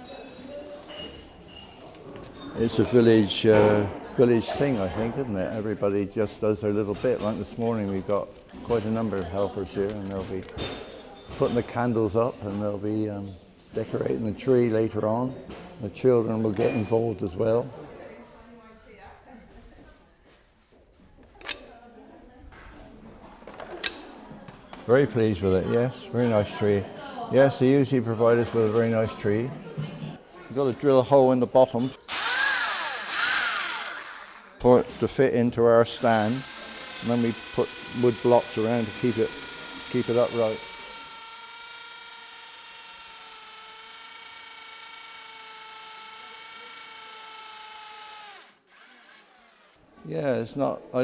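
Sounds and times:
electric drill boring wood: 32.1s - 50.0s.

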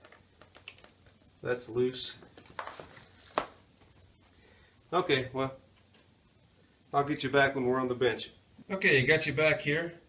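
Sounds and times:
cardboard rustling: 2.2s - 4.0s.

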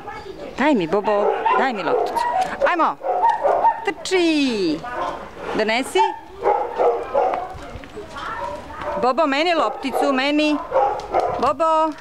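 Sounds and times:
dog barking: 1.0s - 4.0s, 4.8s - 11.6s.

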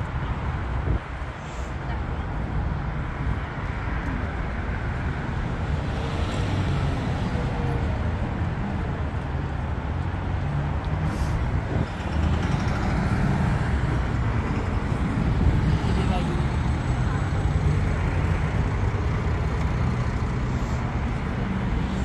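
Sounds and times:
road traffic: 0.0s - 22.0s.

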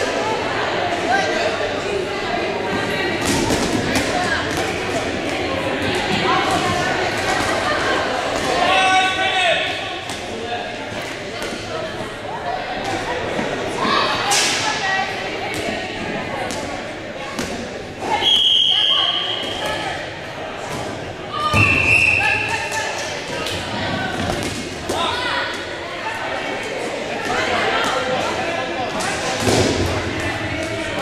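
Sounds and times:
shrill whistle blasts: 18.2s - 19.7s, 21.6s - 22.5s.

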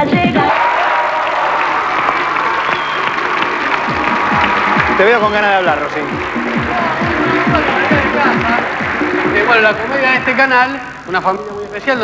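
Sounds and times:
music: 0.0s - 0.6s, 1.6s - 12.0s
studio applause: 0.0s - 12.0s.

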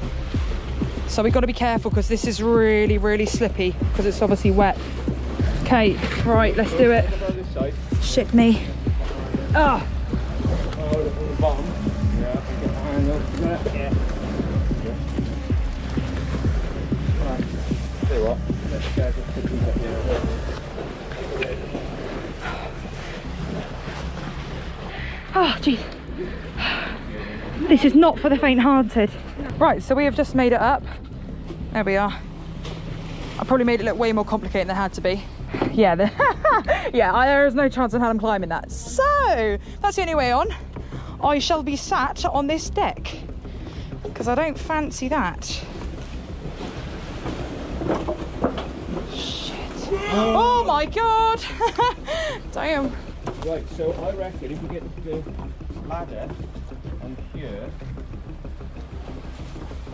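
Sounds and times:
waves washing: 0.0s - 59.9s.

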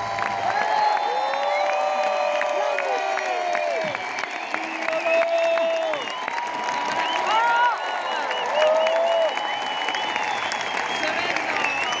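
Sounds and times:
crowd applauding and cheering: 0.0s - 12.0s
whistles: 3.6s - 12.0s.

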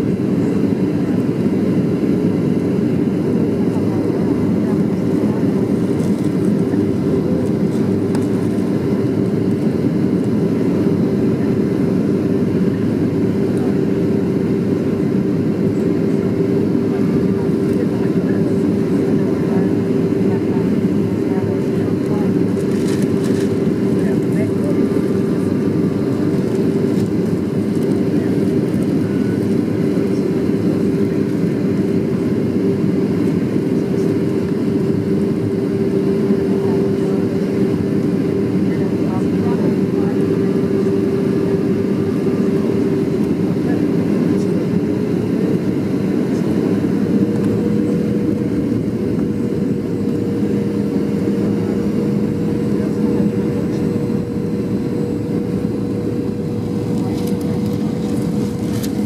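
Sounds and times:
airplane cabin engine rush: 0.0s - 59.0s
constant hum: 0.0s - 59.0s.

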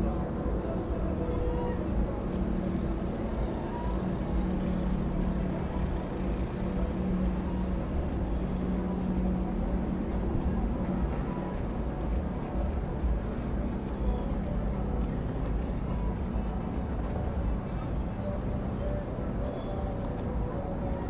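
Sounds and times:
boat engines droning: 0.0s - 21.0s.

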